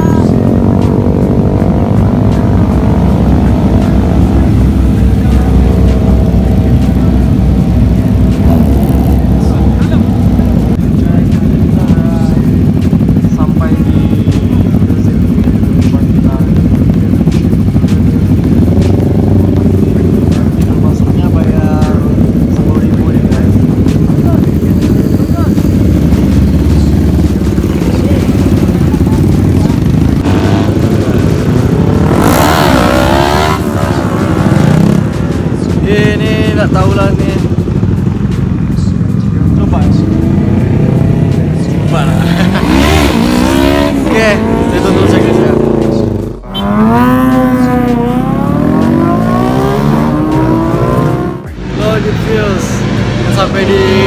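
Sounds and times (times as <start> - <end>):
people talking: 0.0 - 1.1, 1.8 - 54.0
motorcycle throttle blips: 0.0 - 51.6
motorcycles idling: 0.0 - 54.0.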